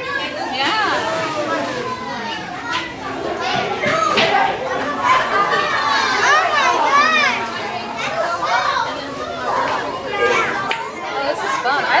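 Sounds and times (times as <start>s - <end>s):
children chattering and calling out: 0.0s - 12.0s
people talking: 0.0s - 12.0s.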